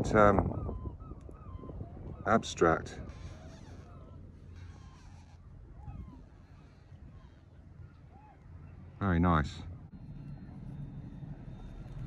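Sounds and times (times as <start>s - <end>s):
distant bird calls: 0.0s - 12.0s
steady low rumble: 5.2s - 12.0s.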